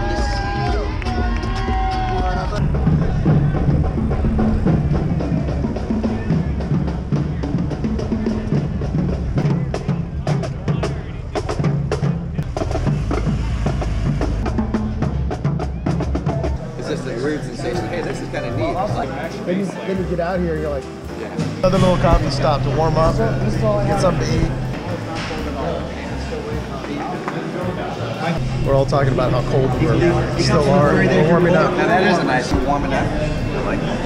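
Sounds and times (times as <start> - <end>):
marching drumline: 0.7 - 16.6.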